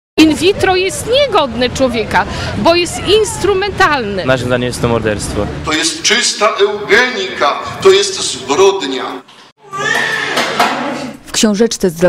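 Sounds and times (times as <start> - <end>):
newborn baby crying: 9.6 - 10.6.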